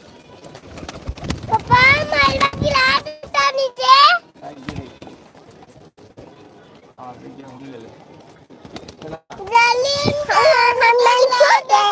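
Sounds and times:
background noise: 0:00.0 - 0:11.9
child's high-pitched voice: 0:01.5 - 0:04.3, 0:09.3 - 0:11.9.

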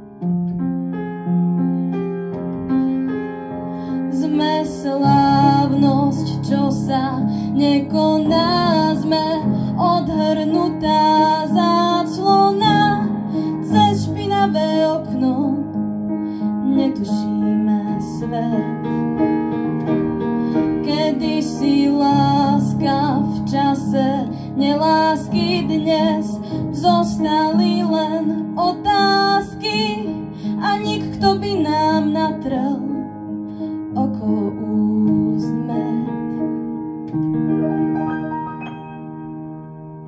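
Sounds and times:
upright piano: 0:00.0 - 0:40.0
woman singing a pop ballad: 0:04.0 - 0:15.8, 0:16.4 - 0:18.9, 0:20.6 - 0:33.1, 0:33.8 - 0:36.4.

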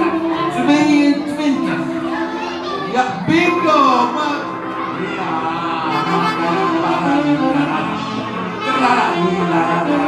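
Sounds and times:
guitar playing: 0:00.0 - 0:10.0.

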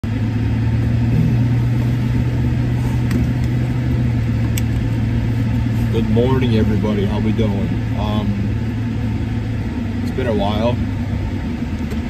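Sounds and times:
car engine and road drone: 0:00.0 - 0:12.0.

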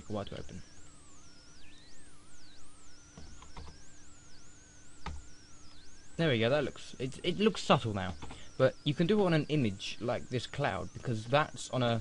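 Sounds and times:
faint wavering tones: 0:00.0 - 0:12.0
steady low hum: 0:00.0 - 0:12.0.

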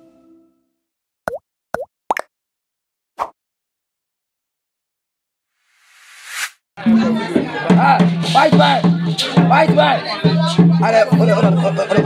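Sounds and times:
pop sound effects: 0:01.3 - 0:02.3.

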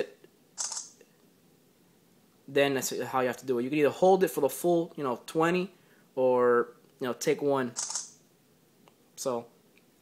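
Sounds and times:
phone camera shutter burst: 0:00.6 - 0:01.0, 0:07.8 - 0:08.2.

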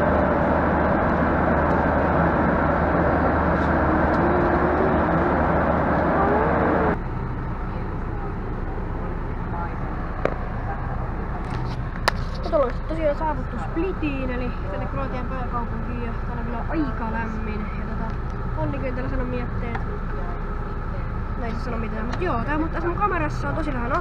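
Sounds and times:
coach engine rumble: 0:00.0 - 0:24.0
jet engine cabin rumble: 0:00.0 - 0:24.0.

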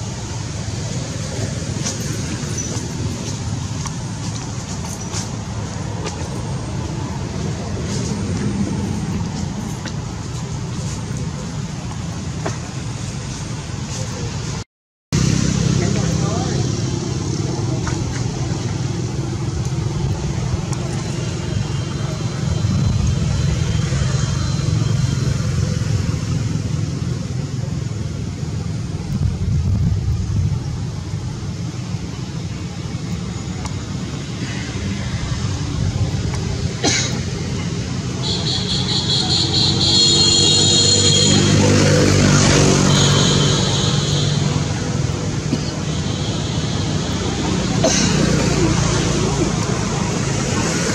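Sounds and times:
low outdoor rumble: 0:15.2 - 0:39.9.

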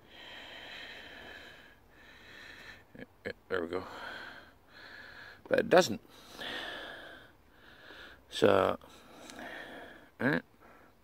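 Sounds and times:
man breathing: 0:00.0 - 0:03.0, 0:03.8 - 0:11.0.

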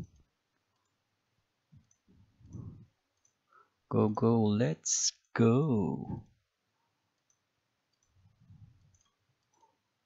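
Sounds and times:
low muffled sound: 0:01.7 - 0:03.0
computer mouse clicks: 0:01.8 - 0:03.4, 0:07.1 - 0:08.2, 0:08.8 - 0:09.8.

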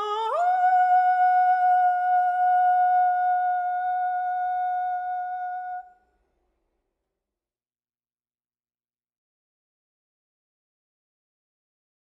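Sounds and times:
woman singing: 0:00.0 - 0:06.0.

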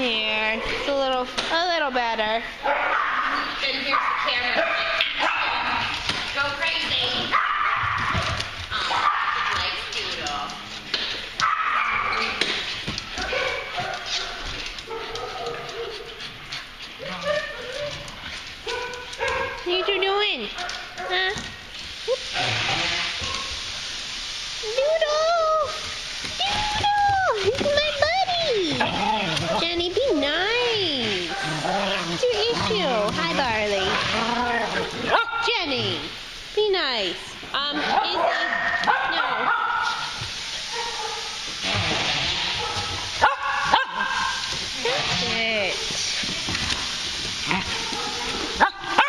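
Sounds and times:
dogs yipping and barking: 0:02.6 - 0:06.1, 0:07.2 - 0:09.8, 0:11.4 - 0:21.3, 0:31.1 - 0:35.6, 0:37.8 - 0:44.9, 0:46.6 - 0:49.0.

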